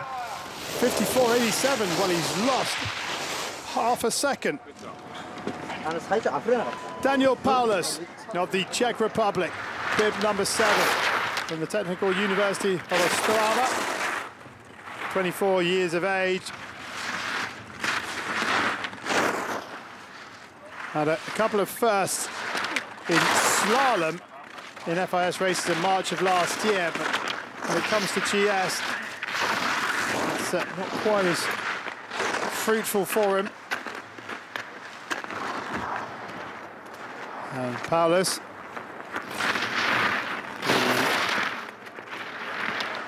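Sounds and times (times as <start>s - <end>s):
ski edges hissing and scraping on snow: 0.0s - 4.5s, 5.8s - 38.4s, 39.1s - 43.0s.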